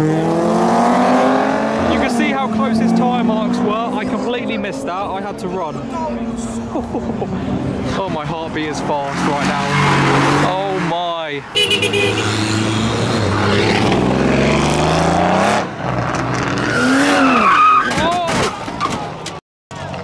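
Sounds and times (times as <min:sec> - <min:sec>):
car engines revving: 0:00.0 - 0:20.0.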